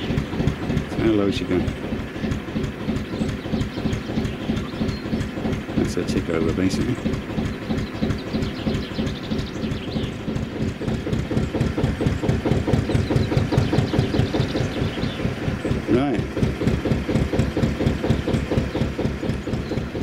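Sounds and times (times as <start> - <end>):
diesel engine idling: 0.0 - 20.0.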